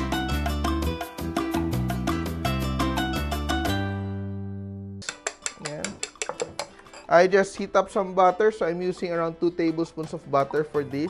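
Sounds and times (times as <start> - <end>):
whisk clinking against glass bowl: 5.0 - 7.5.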